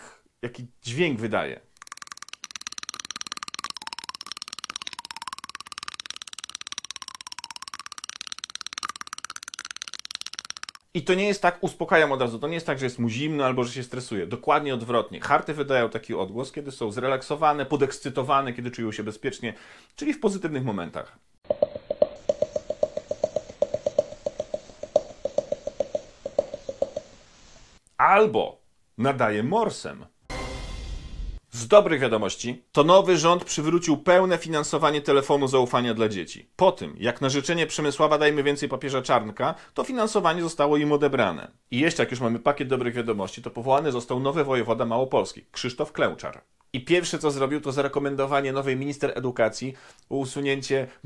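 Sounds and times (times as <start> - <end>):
dog chattering teeth: 1.8 - 10.8, 21.5 - 27.1.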